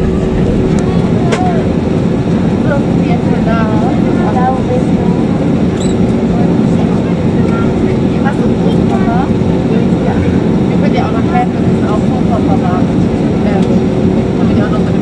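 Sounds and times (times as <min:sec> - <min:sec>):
steady tone: 0:00.0 - 0:04.1
jet engine and air system hum: 0:00.0 - 0:15.0
voices talking: 0:00.0 - 0:15.0.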